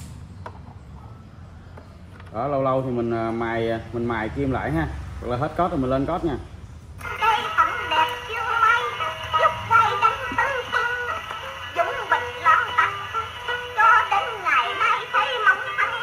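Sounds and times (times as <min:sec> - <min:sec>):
gramophone record with singing: 0:07.0 - 0:16.0.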